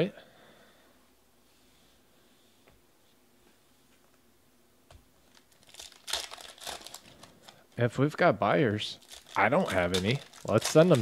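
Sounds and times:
foil wrapper crinkling: 5.2 - 7.8, 8.9 - 11.0.

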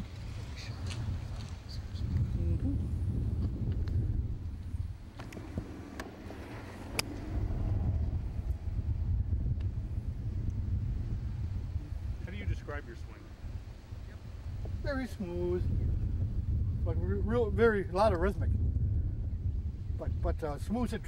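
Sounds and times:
wind buffeting microphone: 0.0 - 21.0
golf club striking ball: 5.1 - 8.6.

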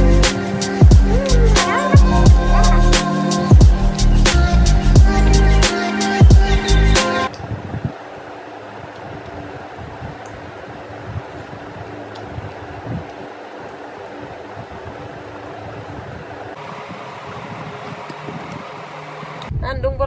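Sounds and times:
fan-like rushing: 0.0 - 19.5.

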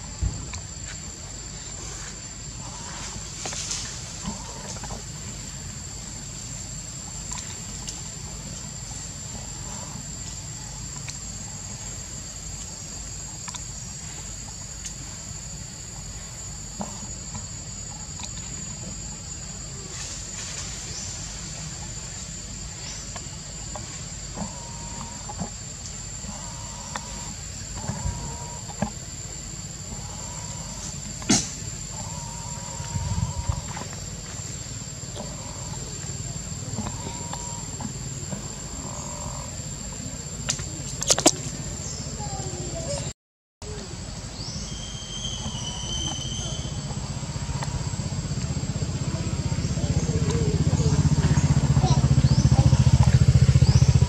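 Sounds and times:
high-pitched insect drone: 0.0 - 54.0
low background rumble: 0.0 - 54.0
sharp click: 40.5 - 41.4.

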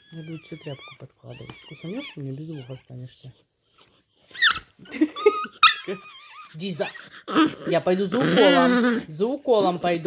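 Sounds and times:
dog yelping: 0.0 - 2.9, 3.6 - 9.1.

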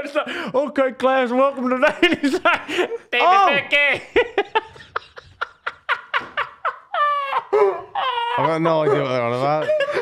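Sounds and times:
men laughing in rhythmic bursts: 1.9 - 3.1, 3.9 - 10.0
high-pitched squealing laugh: 5.9 - 10.0.

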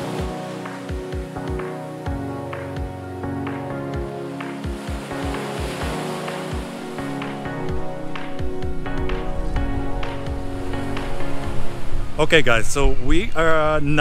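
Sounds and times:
background music with steady beat: 0.0 - 12.4.

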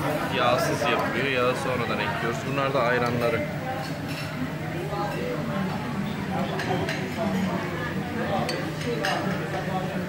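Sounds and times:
dishes and cutlery clinking: 3.0 - 4.4, 6.4 - 7.6, 8.3 - 9.7.

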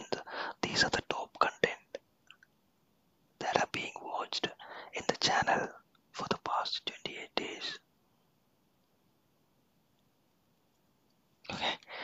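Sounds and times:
person whispering: 0.0 - 2.0, 3.4 - 7.9, 11.4 - 12.0.

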